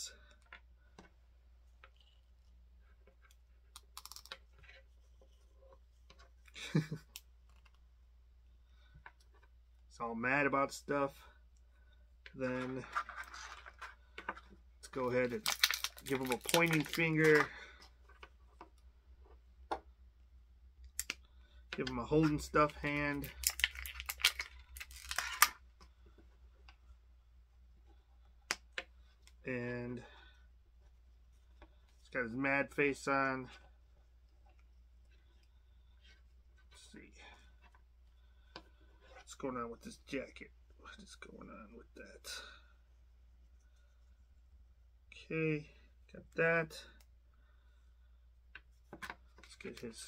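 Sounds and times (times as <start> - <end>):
plastic rustle: 15.1 - 17.5.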